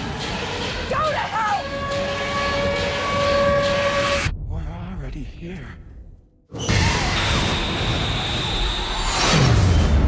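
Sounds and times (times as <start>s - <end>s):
loud horn-like tone: 0.8s - 4.3s.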